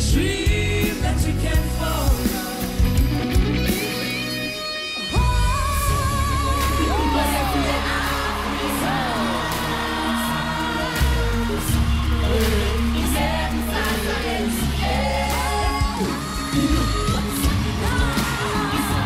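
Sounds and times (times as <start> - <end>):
music with deep bass and beat: 0.0 - 4.6, 5.2 - 19.0
youth choir singing: 5.8 - 19.0.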